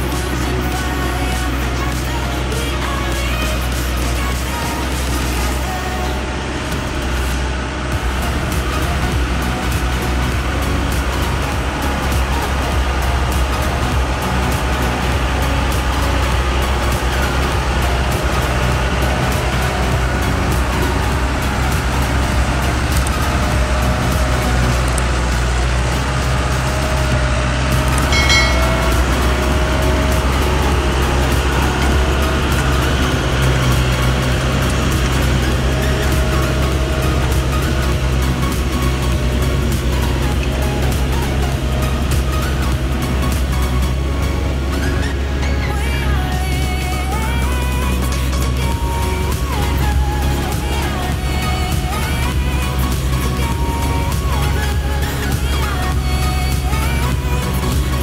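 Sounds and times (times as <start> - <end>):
background music: 0.0 - 58.0
diesel truck engine running: 0.0 - 58.0.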